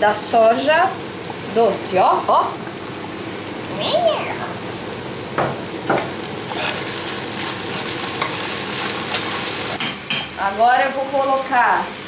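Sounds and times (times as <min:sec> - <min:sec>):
meat and onions sizzling in a pan: 0:00.0 - 0:12.0.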